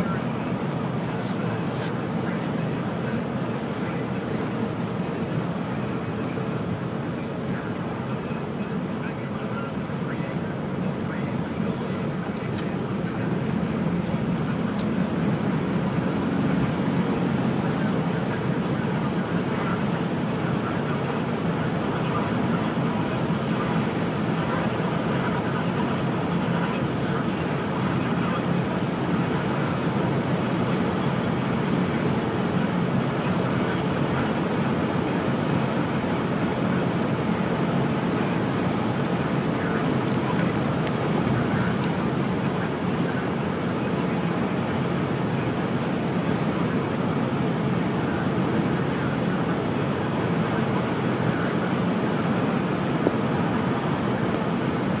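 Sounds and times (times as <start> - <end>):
car road noise: 0.0 - 55.0.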